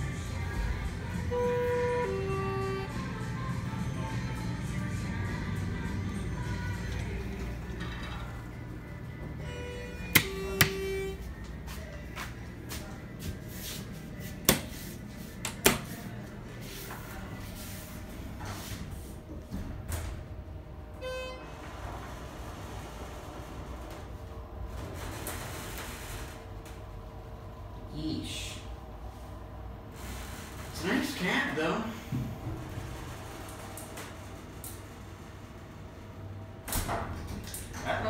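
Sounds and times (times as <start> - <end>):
elevator low hum: 0.0 - 38.0
elevator door and button clicks: 10.0 - 11.1.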